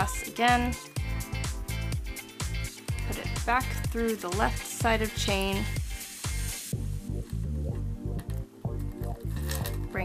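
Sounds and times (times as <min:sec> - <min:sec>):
music with repeating bass beat: 0:00.0 - 0:10.0.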